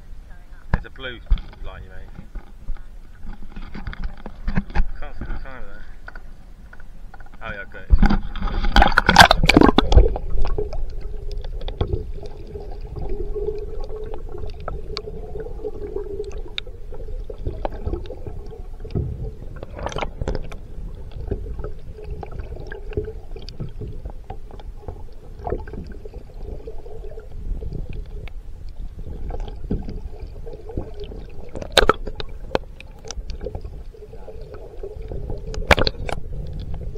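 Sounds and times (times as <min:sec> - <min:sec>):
faint steady hum: 0:00.0 - 0:36.9
underwater bubbling: 0:00.0 - 0:36.9
water splash and sloshing: 0:00.8 - 0:36.9.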